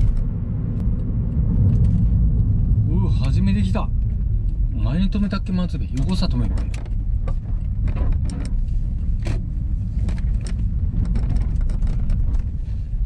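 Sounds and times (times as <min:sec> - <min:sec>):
car engine and road rumble: 0:00.0 - 0:13.0
light clicks and knocks: 0:05.8 - 0:12.6.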